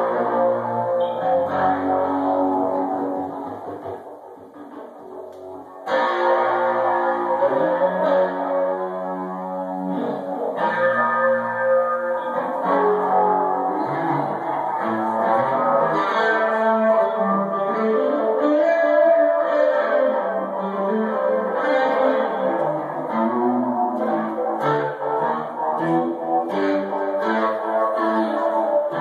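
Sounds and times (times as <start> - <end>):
electric guitar riffing: 0.0 - 29.0.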